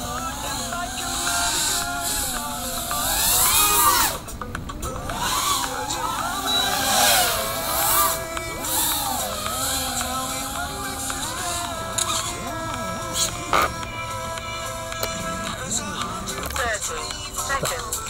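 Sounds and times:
drone motors whining: 0.0 - 18.0.

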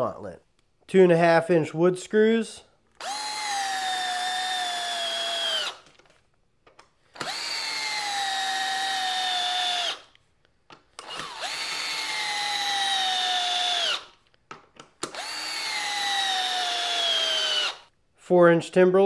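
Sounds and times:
cordless drill motor whine: 3.0 - 5.8, 7.1 - 10.1, 11.0 - 14.1, 15.1 - 17.9.

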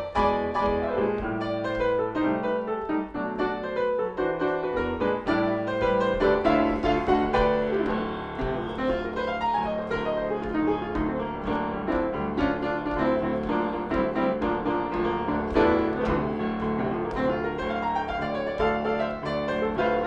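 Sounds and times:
solo jazz piano: 0.0 - 20.0.

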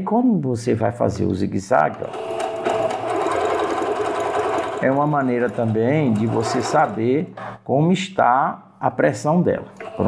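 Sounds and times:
sewing machine stitching: 1.9 - 7.3, 9.8 - 10.0.

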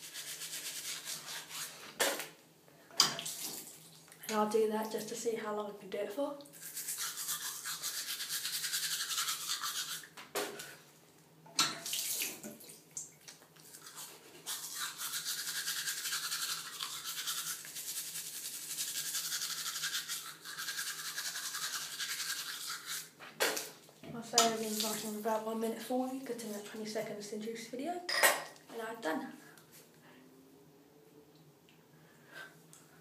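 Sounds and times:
toothbrush scrubbing teeth: 0.0 - 1.8, 6.5 - 10.2, 13.3 - 23.2.

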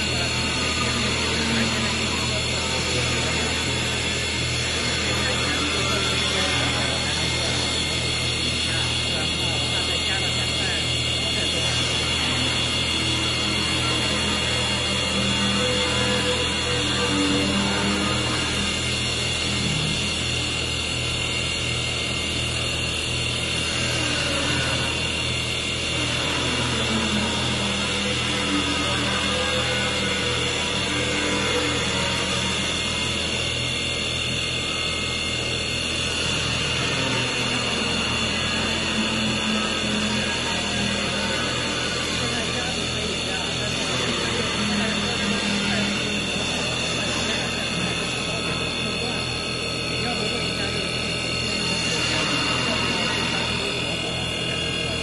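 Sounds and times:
high machine whine: 0.0 - 55.0
wood lathe machine hum: 0.0 - 55.0.

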